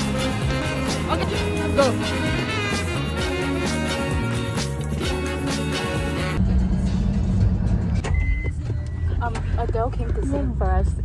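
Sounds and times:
background music: 0:00.0 - 0:11.0
car cabin engine and road noise: 0:06.4 - 0:11.0.

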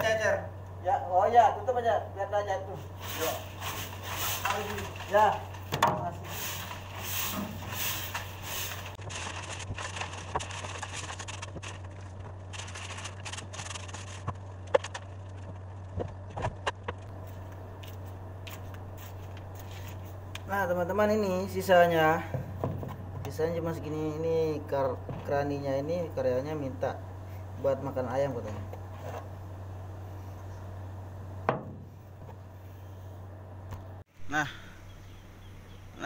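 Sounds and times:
steady low hum: 0:00.0 - 0:36.0
broom sweeping steel floor: 0:02.8 - 0:09.0, 0:18.5 - 0:20.2.

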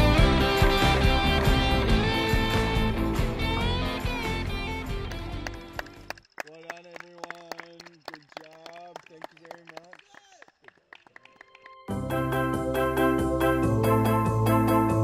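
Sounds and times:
band playing rock song: 0:00.0 - 0:05.9.

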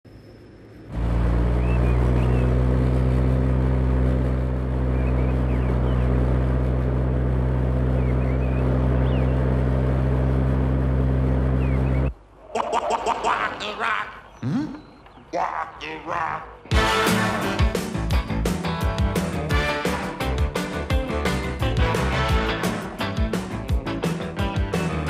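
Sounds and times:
car engine idling: 0:00.1 - 0:12.1.

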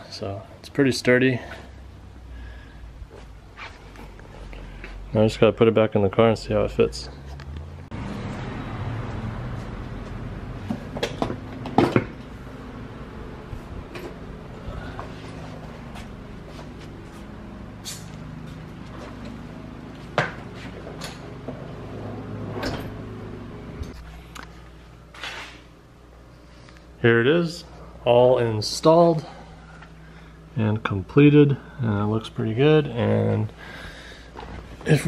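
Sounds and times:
low steady hum: 0:00.0 - 0:35.0.

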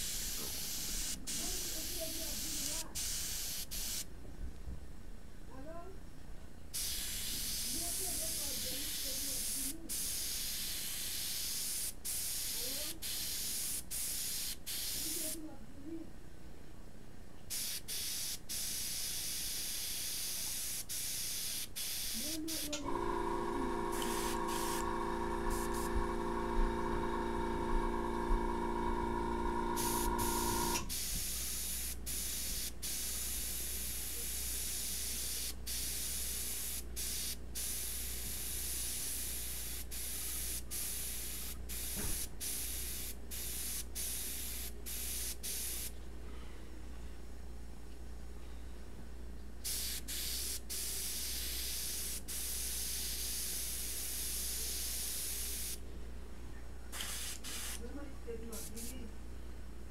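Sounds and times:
airbrush spraying hiss: 0:00.0 - 0:04.1, 0:06.8 - 0:15.4, 0:17.5 - 0:22.9, 0:23.9 - 0:26.1, 0:29.8 - 0:45.9, 0:49.6 - 0:55.8, 0:57.0 - 0:57.8, 0:58.5 - 0:59.0
steady humming tone: 0:22.8 - 0:30.9.

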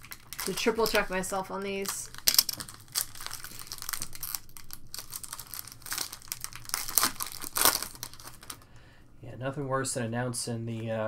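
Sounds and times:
foil wrapper tearing and crinkling: 0:00.0 - 0:08.7.

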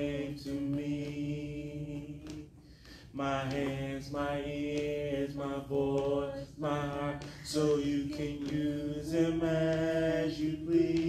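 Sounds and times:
man singing gospel: 0:00.0 - 0:11.0.

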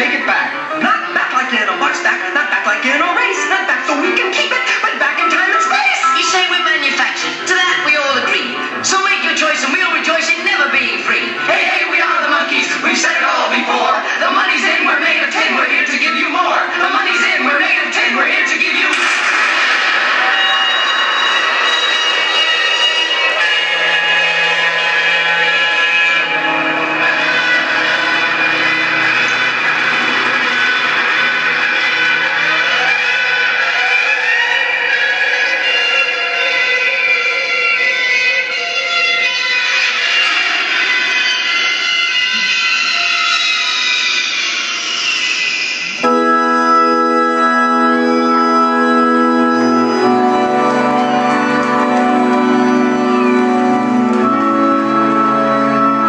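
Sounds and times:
swirling electronic drone: 0:18.9 - 0:31.0.

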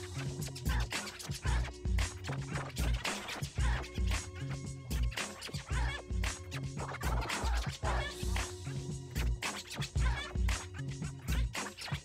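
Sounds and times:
record scratching: 0:00.0 - 0:12.0
heavy kick drum beat: 0:07.8 - 0:10.7.

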